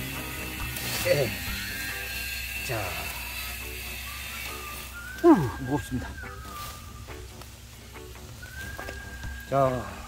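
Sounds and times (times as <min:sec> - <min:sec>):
construction machinery drone: 0:00.0 - 0:05.2
high whine: 0:00.0 - 0:07.5.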